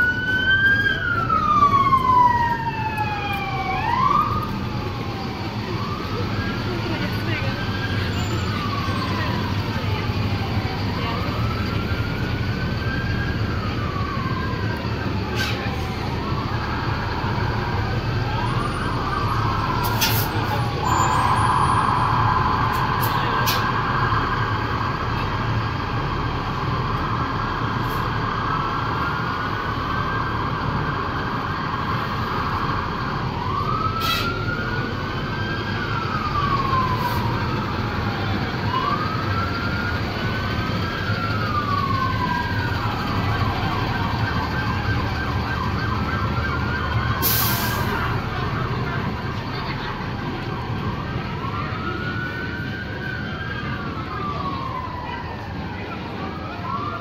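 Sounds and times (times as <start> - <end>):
emergency sirens wailing: 0.0 - 57.0.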